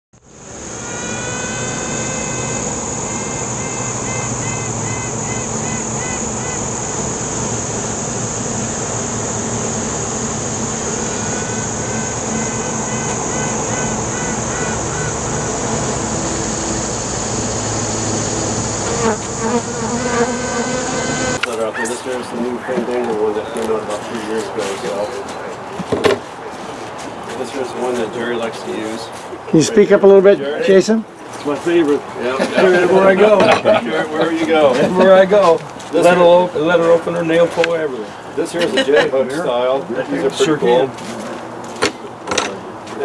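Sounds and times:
high hiss: 0.2s - 25.1s
insect-like buzzing: 0.3s - 21.5s.

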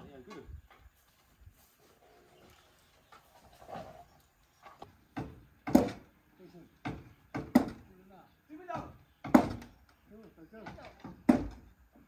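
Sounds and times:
voices talking: 2.1s - 11.2s.

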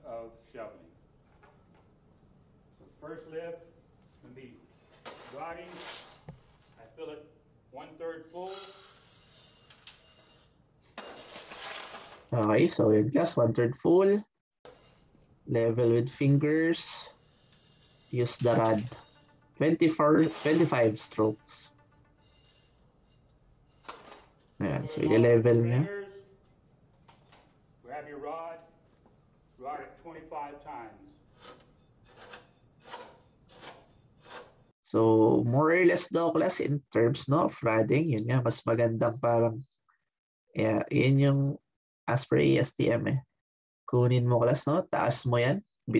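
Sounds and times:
metal rod crunching into gravel: 4.8s - 6.8s, 8.4s - 12.4s, 16.2s - 23.0s, 23.7s - 24.6s
scoop digging into gravel: 5.0s - 6.3s, 11.0s - 12.4s, 20.1s - 21.3s
stones poured into metal measure: 8.4s - 12.4s, 16.3s - 19.4s, 20.1s - 21.3s.

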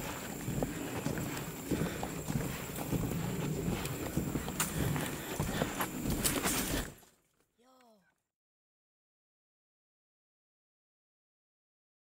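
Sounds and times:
footsteps on wooden boardwalk: 0.0s - 8.0s.

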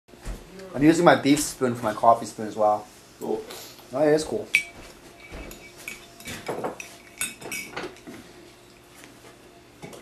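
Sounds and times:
spoon clinking in cup: 4.5s - 8.1s.

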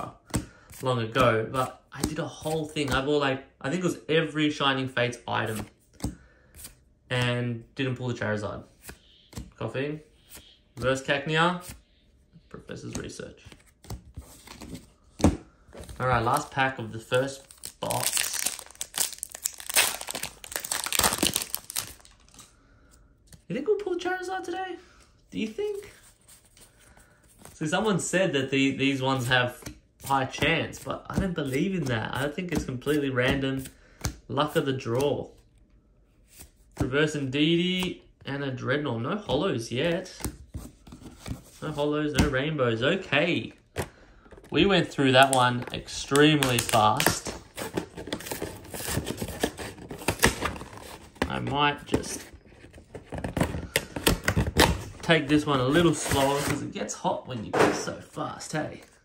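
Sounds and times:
cardboard packaging rustling: 13.6s - 22.5s, 44.4s - 56.6s
foil wrapper crinkling and tearing: 17.3s - 22.5s, 46.0s - 47.3s.

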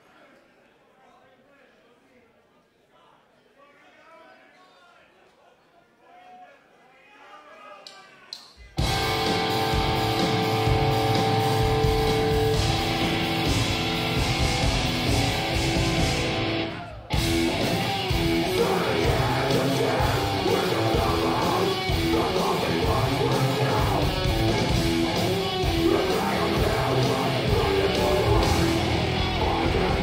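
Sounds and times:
faint crowd chatter: 0.0s - 9.8s
live metal band playing: 8.8s - 30.0s.

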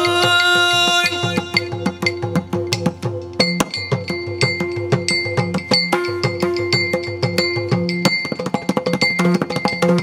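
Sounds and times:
small hand cymbals: 0.0s - 10.0s.

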